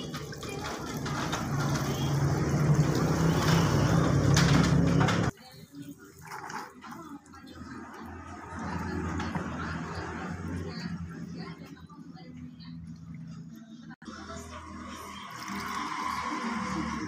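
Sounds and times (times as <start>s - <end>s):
irregular water splashing: 0.0s - 4.8s
water pouring from bucket: 0.0s - 4.9s, 6.1s - 10.9s, 15.2s - 17.0s.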